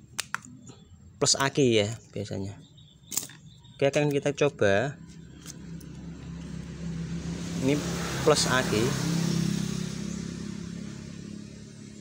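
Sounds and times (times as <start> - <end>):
vehicle engine running: 4.4 - 12.0.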